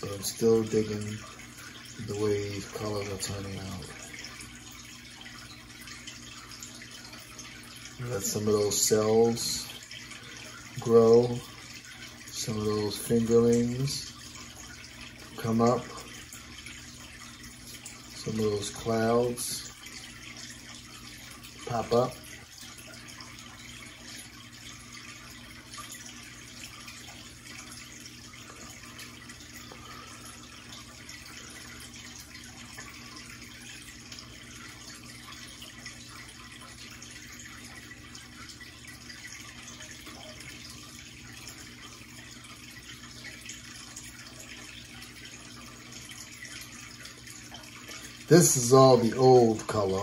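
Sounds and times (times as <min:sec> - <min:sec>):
aquarium water trickling: 0:00.0 - 0:50.0
faint steady hum: 0:00.0 - 0:50.0.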